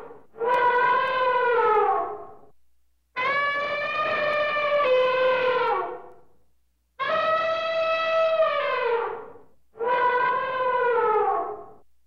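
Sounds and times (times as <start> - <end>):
animal long falling call: 7.0 - 11.7.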